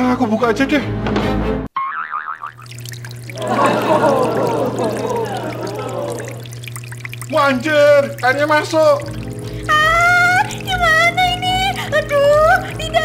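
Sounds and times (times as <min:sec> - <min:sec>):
cartoon wobbling boing: 0:01.8 - 0:02.6
water gushing and bubbling: 0:02.5 - 0:13.0.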